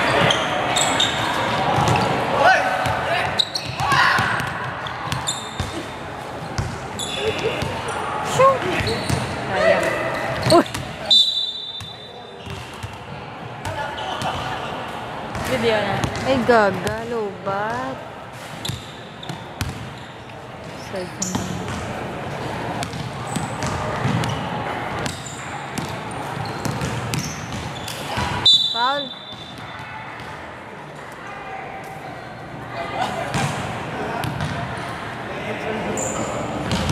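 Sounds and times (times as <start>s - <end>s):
shoe squeal on gym floor: 0.0s - 2.2s, 3.1s - 8.0s, 8.7s - 13.0s, 13.7s - 14.6s, 18.4s - 20.4s, 21.0s - 21.7s, 22.9s - 30.2s, 35.8s - 36.9s.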